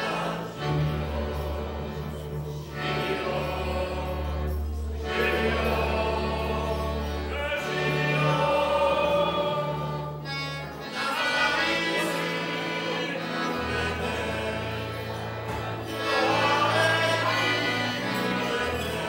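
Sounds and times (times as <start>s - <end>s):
double bass: 0.0s - 19.0s
folk band playing: 0.0s - 19.0s
group singing folk song: 0.0s - 19.0s.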